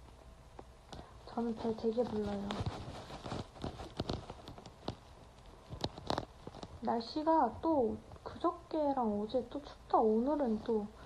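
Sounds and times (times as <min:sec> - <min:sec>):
microphone handling clicks and taps: 0:00.0 - 0:06.9.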